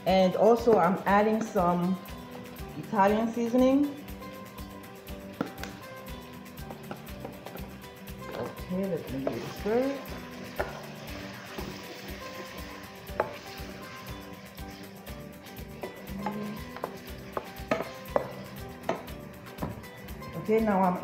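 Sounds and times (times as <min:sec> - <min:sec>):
wooden spoon stirring in frying pan: 0:06.6 - 0:20.2
spoon knocking against pan: 0:13.1 - 0:13.5, 0:15.8 - 0:19.8.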